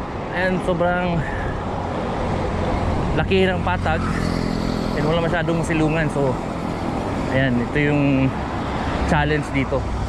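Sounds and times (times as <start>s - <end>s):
road traffic: 0.0s - 10.0s
wind on microphone: 1.3s - 3.8s.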